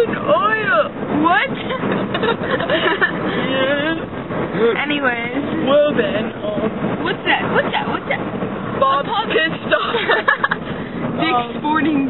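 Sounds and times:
young women talking: 0.0 - 1.9, 2.9 - 10.4, 11.2 - 12.0
car road noise: 0.0 - 12.0.

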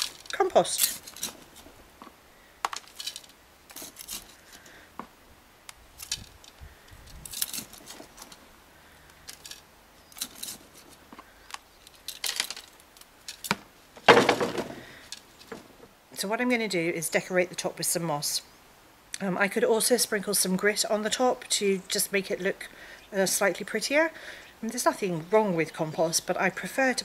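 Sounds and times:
gritty rattling and scraping: 0.0 - 5.2, 5.9 - 15.9.

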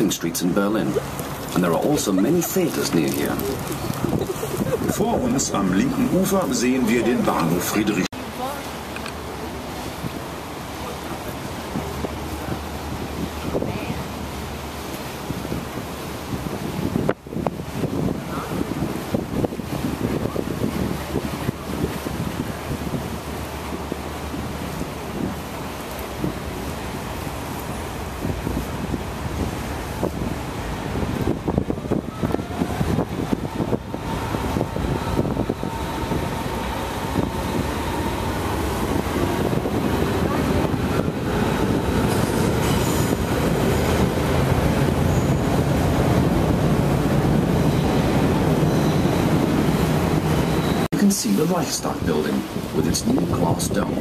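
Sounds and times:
train rumbling over bridge: 0.0 - 54.0
wind noise on microphone: 0.8 - 10.4, 11.3 - 51.1, 51.9 - 54.0.

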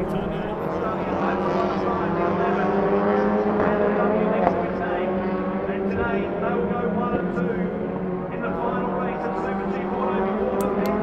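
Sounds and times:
racing car engines drone: 0.0 - 11.0.

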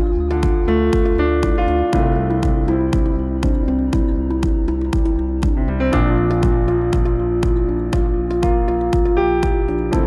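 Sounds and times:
drum machine beat: 0.0 - 10.0
keyboard and synthesizer chords: 0.0 - 10.0.

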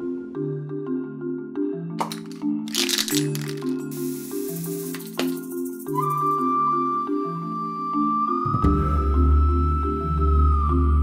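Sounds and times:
short rattling clicks: 2.0 - 3.8
spray paint can hissing: 2.0 - 6.4.

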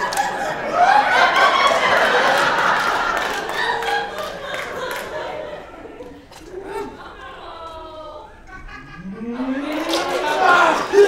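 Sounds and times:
audience laughing: 0.0 - 11.0.

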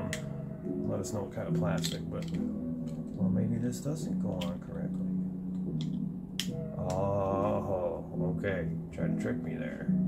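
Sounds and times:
man humming: 6.8 - 8.0.

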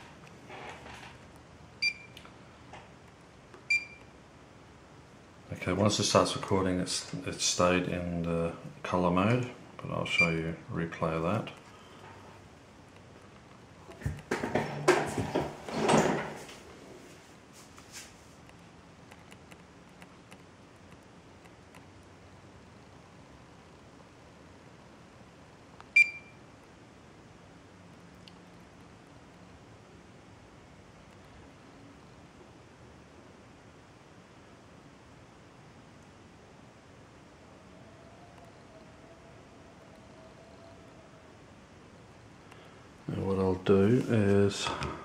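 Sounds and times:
faint room hiss: 0.0 - 45.0.

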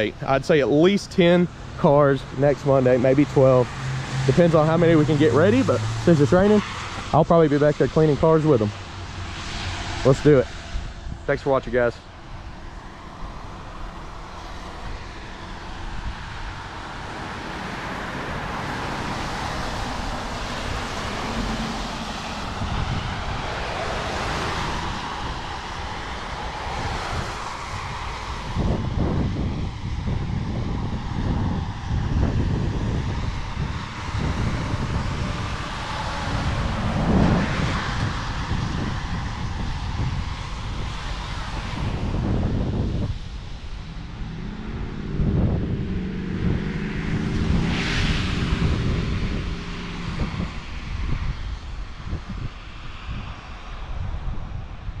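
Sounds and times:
engine drone: 0.0 - 51.7
traffic on wet road: 0.0 - 55.0
wind rumbling on microphone: 0.0 - 55.0.

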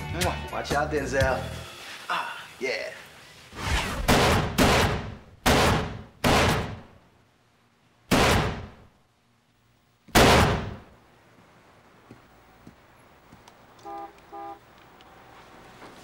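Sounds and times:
pistol shots with ringing echo: 4.1 - 6.8, 8.1 - 8.8, 10.2 - 10.8.

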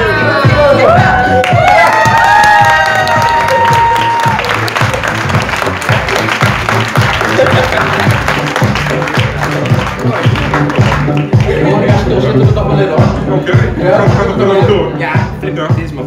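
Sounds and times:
people clapping and cheering: 0.0 - 13.2
background music with beat: 0.0 - 16.0
loud whoops and shout: 0.7 - 4.6.

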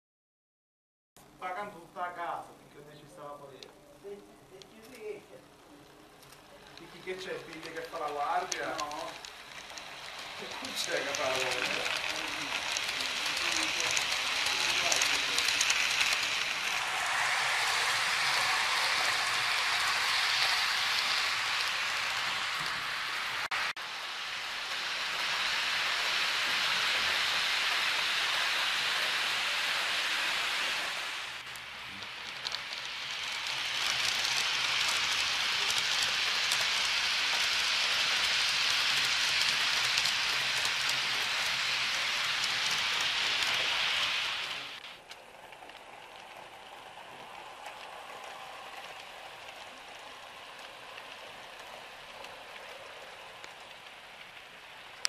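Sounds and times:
model train wheels on rails: 1.2 - 55.0.

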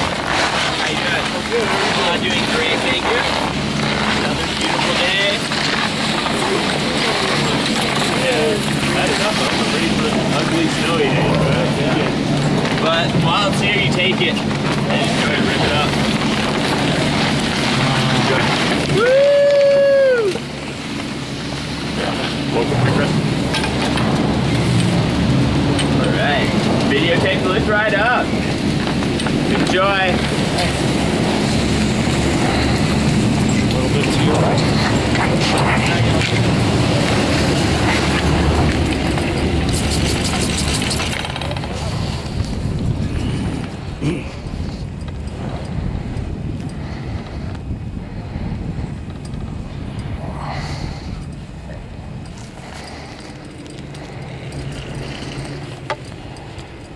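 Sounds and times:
chairlift machinery droning: 0.0 - 56.9
rattling clatter: 31.7 - 42.5, 52.2 - 56.9.

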